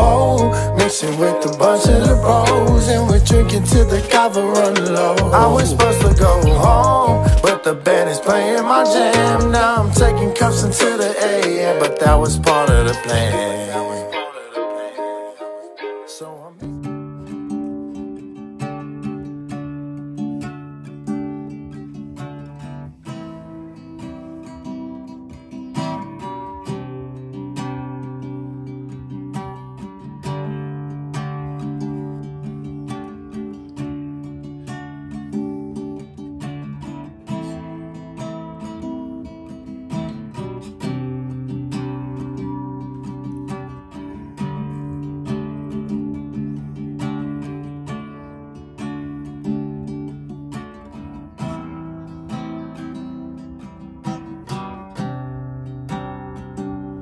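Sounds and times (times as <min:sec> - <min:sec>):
acoustic guitar strumming: 0:00.0 - 0:57.0
recorded song: 0:00.0 - 0:57.0.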